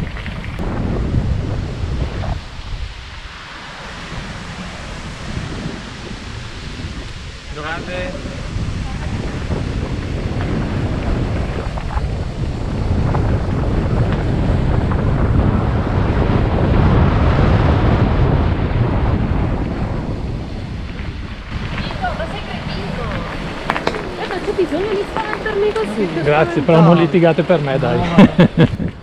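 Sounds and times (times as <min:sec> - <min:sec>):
wind buffeting microphone: 0:00.0 - 0:29.0.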